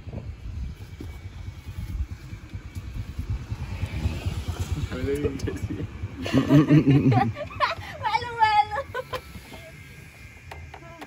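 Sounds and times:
engine running: 0:00.0 - 0:11.0.

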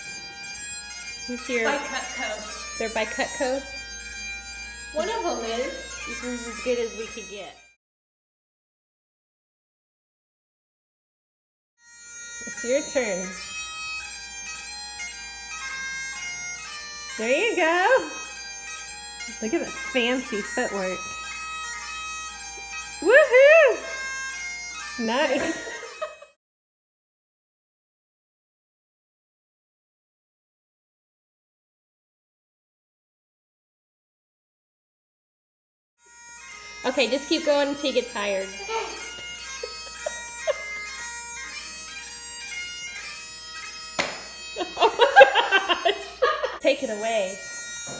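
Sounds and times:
bagpipe melody over drone: 0:00.0 - 0:07.8, 0:11.8 - 0:26.4, 0:36.0 - 0:47.9.

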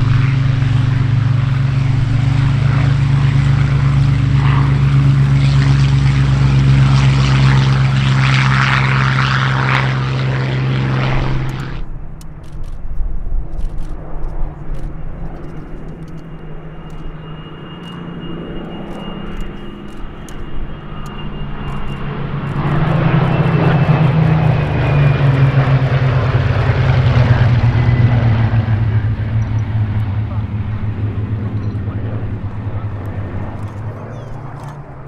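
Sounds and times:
propeller planes flying past: 0:00.0 - 0:35.0.

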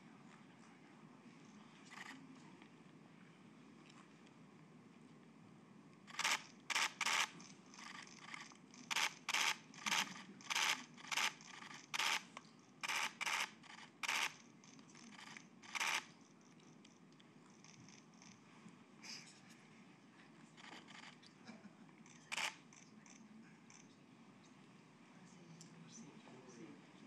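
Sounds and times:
camera shutters firing in bursts: 0:06.1 - 0:16.1, 0:22.1 - 0:22.9.

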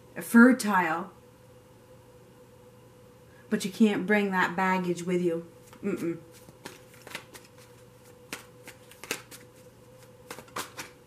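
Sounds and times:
faint steady hum: 0:00.0 - 0:11.0
cards clicking together: 0:06.4 - 0:07.7, 0:08.3 - 0:09.5, 0:10.3 - 0:11.0.

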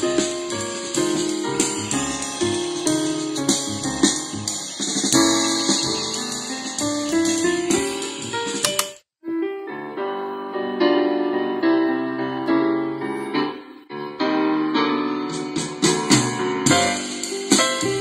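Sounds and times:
piano music through radio speaker: 0:00.0 - 0:18.0.

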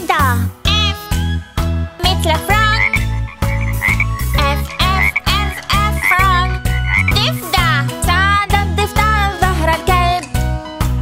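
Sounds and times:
children's song with bouncy beat: 0:02.0 - 0:11.0
cartoon frog croaks: 0:02.5 - 0:07.7.

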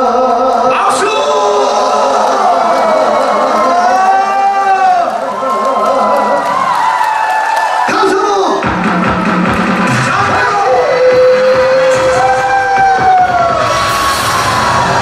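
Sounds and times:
man singing into a microphone: 0:00.0 - 0:02.1, 0:10.1 - 0:13.2.

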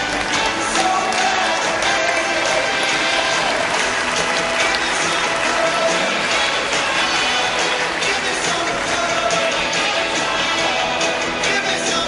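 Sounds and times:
audience applauding: 0:00.0 - 0:12.0
ride music: 0:00.0 - 0:12.0.

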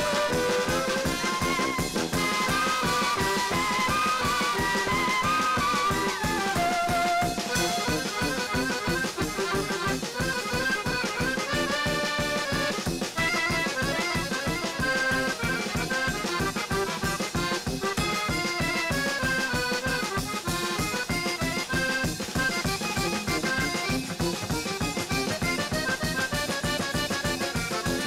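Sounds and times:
klezmer band playing: 0:00.0 - 0:28.0
piano accordion: 0:00.0 - 0:28.0.

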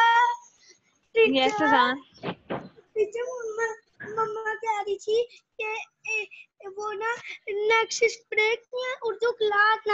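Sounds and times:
child's sing-song voice: 0:01.2 - 0:01.9.

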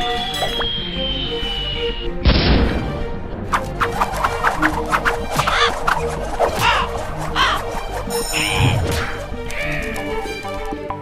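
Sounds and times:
background music: 0:00.0 - 0:11.0
cartoon bird squawking: 0:05.4 - 0:05.8, 0:06.6 - 0:07.7.

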